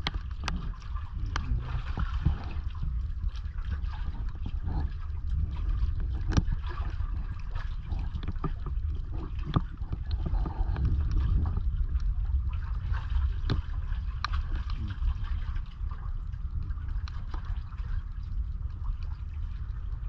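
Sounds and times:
low rumble: 0:00.0 - 0:20.0
water lapping and gurgling: 0:00.0 - 0:20.0.

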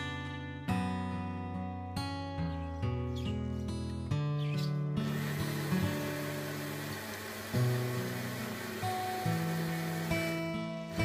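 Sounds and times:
acoustic guitar music: 0:00.0 - 0:11.0
electric blender running: 0:05.0 - 0:11.0.

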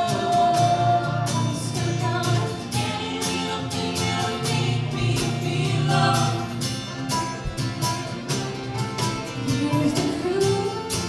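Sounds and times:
harmony voices: 0:00.0 - 0:11.0
strummed acoustic guitar: 0:00.0 - 0:11.0
upright bass: 0:00.0 - 0:11.0
woman singing: 0:00.0 - 0:11.0.

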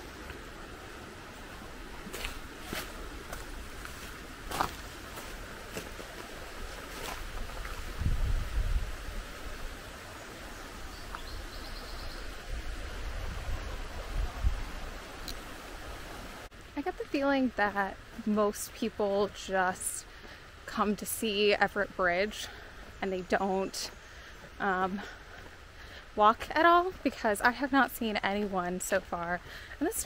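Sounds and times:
wind rumble on microphone: 0:00.0 - 0:16.5
river running over rocks: 0:00.0 - 0:22.9
footsteps on stony bank: 0:01.3 - 0:08.4, 0:24.3 - 0:27.1.

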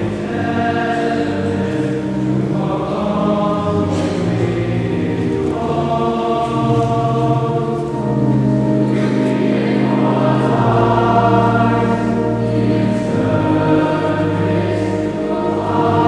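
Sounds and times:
choir singing: 0:00.0 - 0:16.0.

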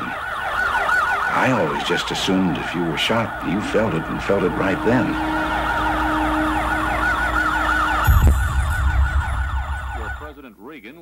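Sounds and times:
sirens wailing in fast yelp: 0:00.0 - 0:10.4
traffic rumble: 0:00.0 - 0:10.4.

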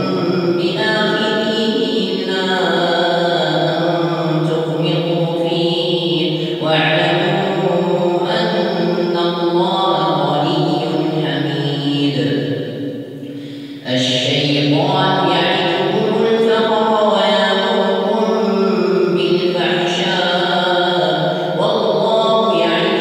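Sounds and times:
man chanting melodic recitation: 0:00.0 - 0:05.1.

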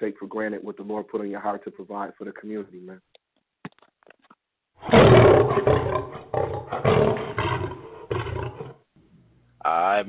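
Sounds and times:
lion roar: 0:04.8 - 0:08.8.

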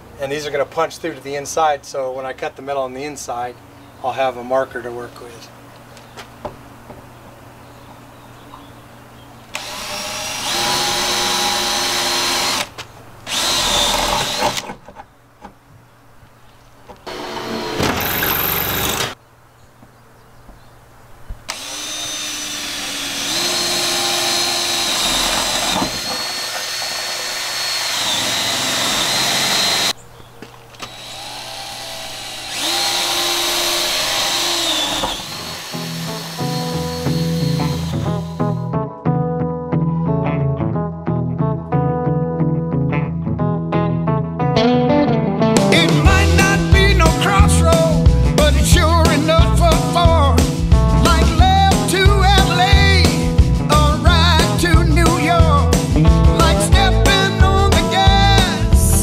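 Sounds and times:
cordless drill boring through metal: 0:09.6 - 0:12.7, 0:13.3 - 0:14.7, 0:17.1 - 0:19.2, 0:21.5 - 0:30.0, 0:30.8 - 0:38.6
music: 0:35.5 - 0:59.0.

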